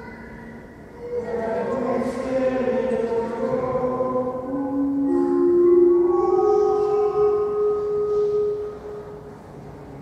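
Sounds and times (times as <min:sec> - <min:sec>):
sung liturgical chant: 0:01.0 - 0:08.7.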